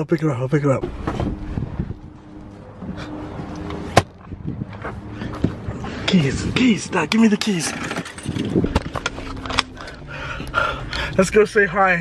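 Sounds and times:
car engine hum inside cabin: 0.0 - 7.6, 8.2 - 12.0.

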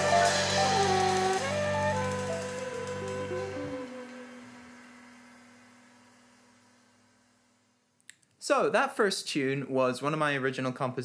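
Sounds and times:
low held jazz note: 0.0 - 5.6.

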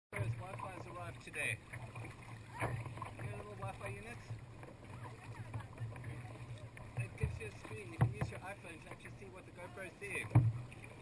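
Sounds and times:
kayak paddle strokes: 0.1 - 11.0
water splashing against hull: 0.1 - 11.0.

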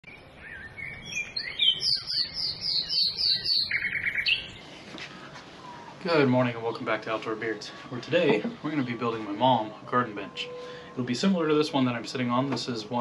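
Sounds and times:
songbird singing: 0.0 - 13.0
faint outdoor background noise: 0.1 - 13.0.

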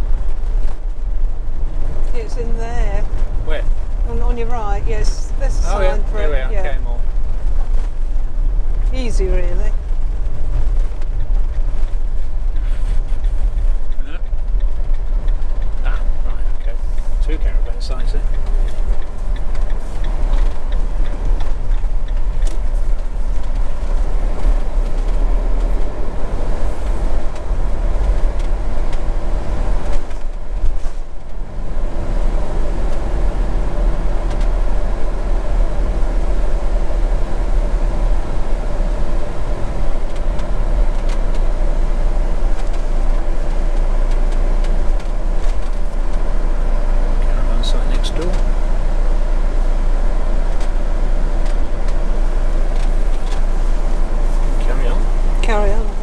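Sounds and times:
motorhome engine and road rumble: 0.0 - 56.0.

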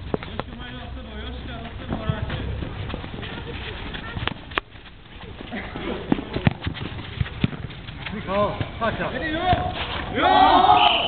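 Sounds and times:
shoes knocking on court: 1.5 - 3.5
ball being kicked: 6.0 - 10.2
players calling out: 8.3 - 11.0.

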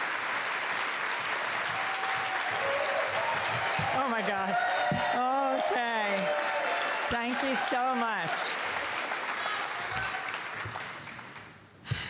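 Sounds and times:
audience applauding: 0.0 - 11.6.

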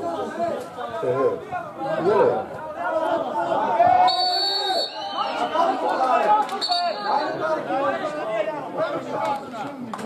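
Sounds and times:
chatter of voices: 0.0 - 10.0.

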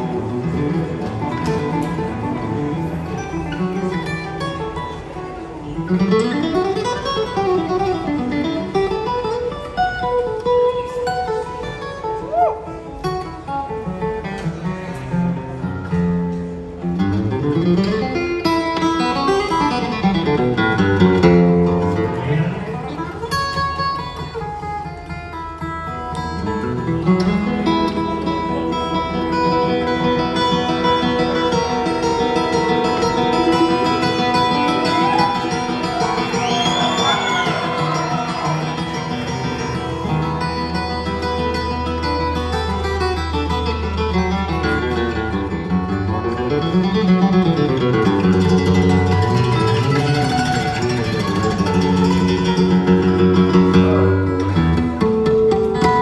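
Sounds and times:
flat-picked acoustic guitars: 0.0 - 56.0
bluegrass string band playing: 18.7 - 56.0.

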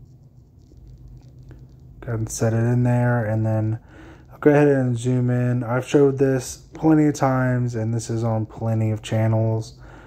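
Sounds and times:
small clicks and rubbing: 0.0 - 2.8
low steady hum: 0.0 - 10.0.

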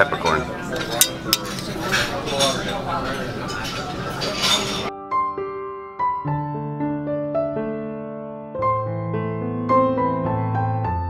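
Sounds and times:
murmur of voices: 0.0 - 4.9
tableware clatter: 0.0 - 4.9
metal ladle clinking on steel: 0.2 - 4.9.

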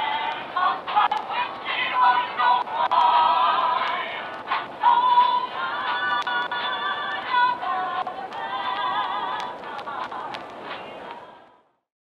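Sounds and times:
person singing with vibrato: 0.0 - 11.5.

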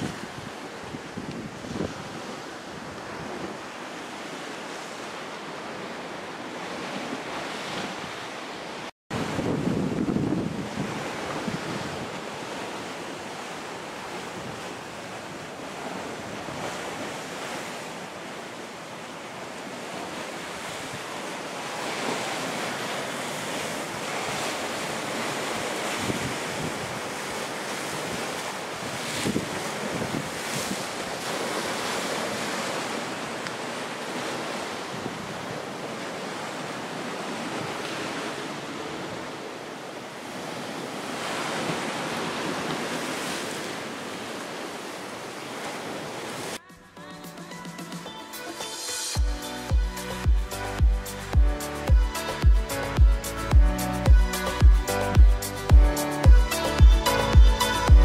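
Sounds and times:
wind blowing across microphone: 0.0 - 3.8, 9.1 - 13.0, 21.8 - 32.9, 34.1 - 36.0
waves breaking on rocky shore: 0.0 - 46.6.

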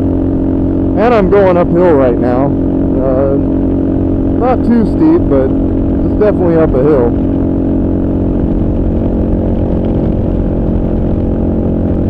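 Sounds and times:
motorcycle engine running under load: 0.0 - 12.0.

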